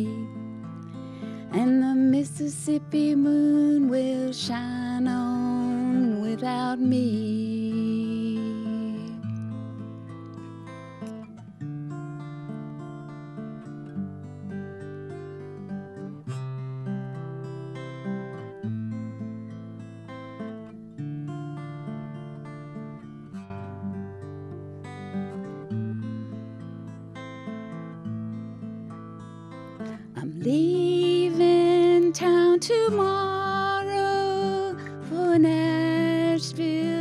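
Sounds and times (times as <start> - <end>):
woman singing: 0.0 - 9.4, 29.9 - 37.0
acoustic guitar picking chords: 0.0 - 37.0.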